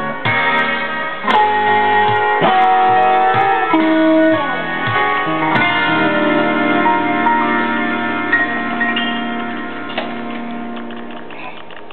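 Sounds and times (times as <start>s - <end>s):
clean electric guitar notes: 0.0s - 11.4s.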